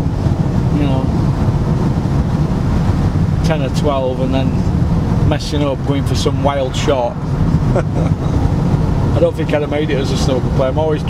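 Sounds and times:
car cabin road and engine rumble: 0.0s - 11.0s
person laughing: 7.7s - 8.5s.

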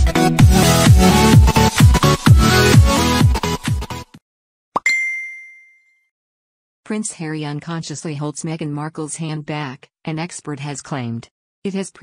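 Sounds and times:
bright electronic ding: 4.8s - 6.1s.

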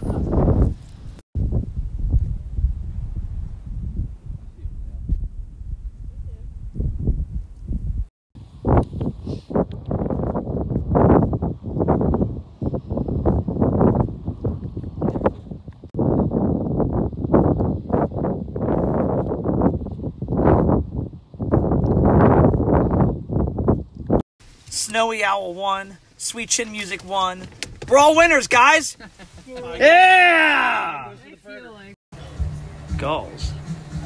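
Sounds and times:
wind buffeting microphone: 0.0s - 24.2s.

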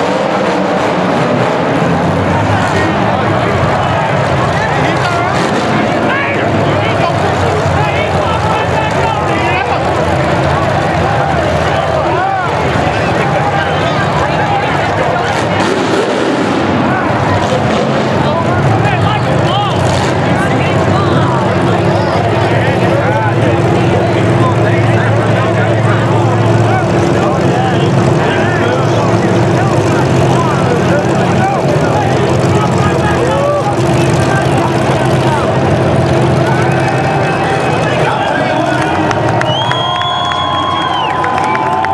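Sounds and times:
car engines running: 0.0s - 41.9s
crowd voices and shouts: 0.0s - 41.9s.

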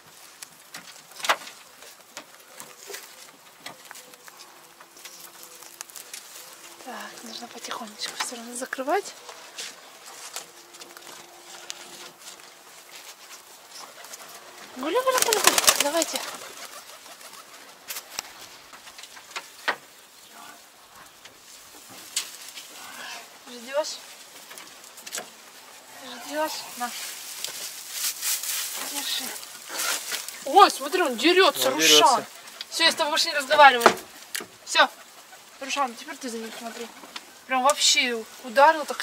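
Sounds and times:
pigeons cooing: 1.1s - 12.8s, 13.4s - 18.0s, 29.0s - 37.4s.

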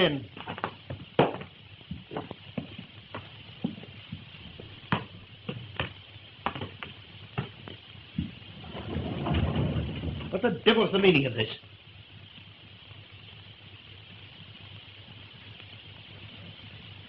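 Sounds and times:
rough noise: 0.0s - 11.5s
film soundtrack hiss and crackle: 0.0s - 17.0s.

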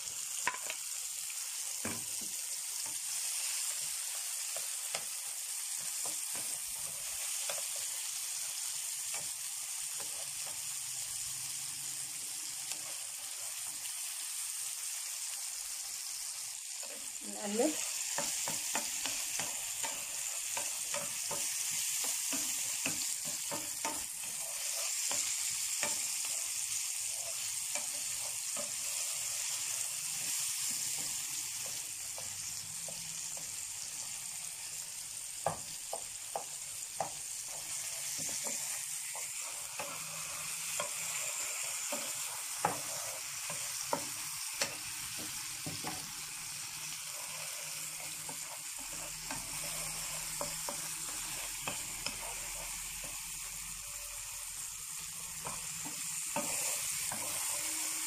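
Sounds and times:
onion and tomato sizzling in oil: 0.0s - 58.0s.

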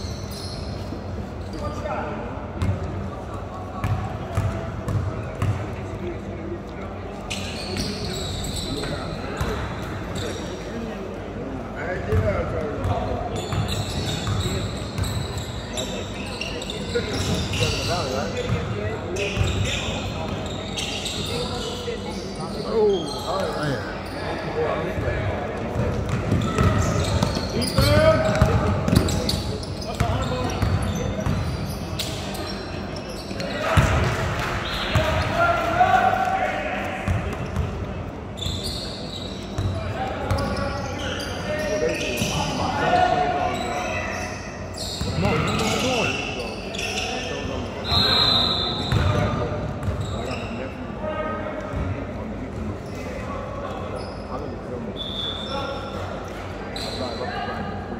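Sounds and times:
basketball bouncing on court: 3.8s - 5.6s, 25.6s - 31.6s, 37.1s - 37.8s, 48.9s - 50.0s.

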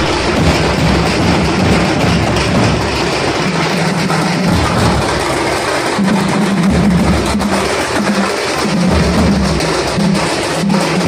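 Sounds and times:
drums beating loudly: 0.0s - 11.0s.

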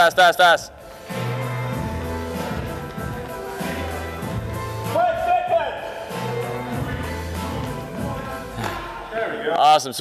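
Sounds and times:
background music with bass line: 0.0s - 9.1s.

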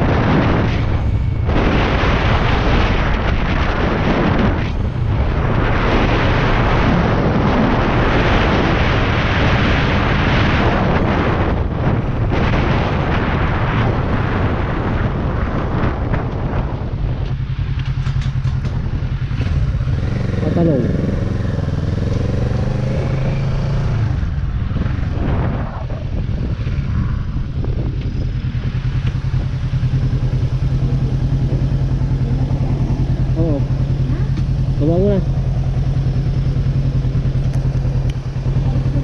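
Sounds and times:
motorcycle engine idling: 16.4s - 22.0s, 26.0s - 39.0s.

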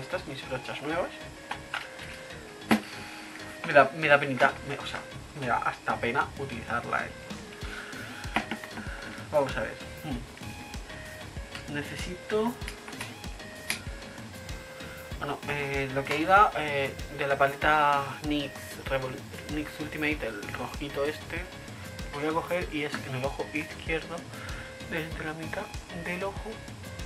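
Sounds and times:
background music with steady beat: 0.0s - 27.0s.

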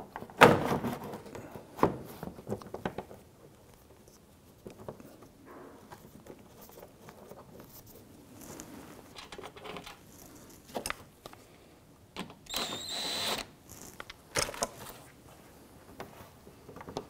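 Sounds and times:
screws clicking and rattling: 12.5s - 14.6s.

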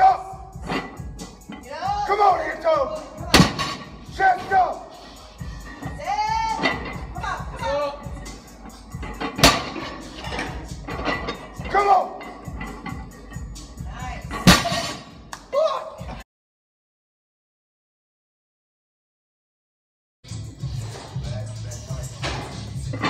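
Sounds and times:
barbell dropped on rubber floor: 3.4s - 3.9s, 14.4s - 15.2s.

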